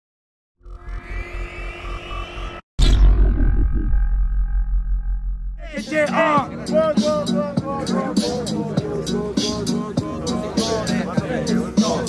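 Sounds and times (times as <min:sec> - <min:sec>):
rising electronic whine: 0:00.6 - 0:05.6
sustained electronic tones: 0:00.6 - 0:05.6
pulsing electronic bass: 0:00.6 - 0:05.8
loud electronic hit: 0:00.7 - 0:05.7.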